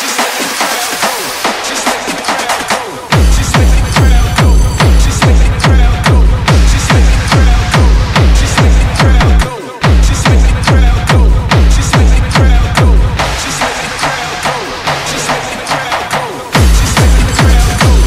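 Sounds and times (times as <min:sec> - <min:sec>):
hi-hats: 0:00.0 - 0:18.0
techno kick drum: 0:00.0 - 0:18.0.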